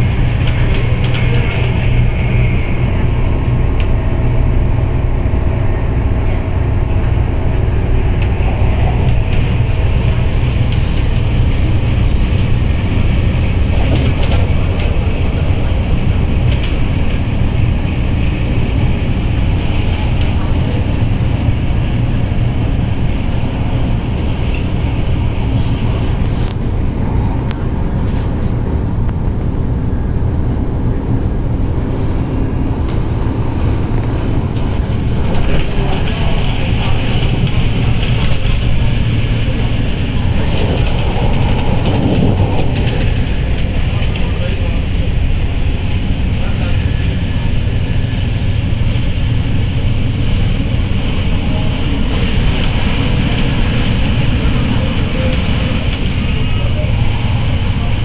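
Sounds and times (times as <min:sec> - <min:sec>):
train wheels rumbling on track: 0:00.0 - 0:58.0.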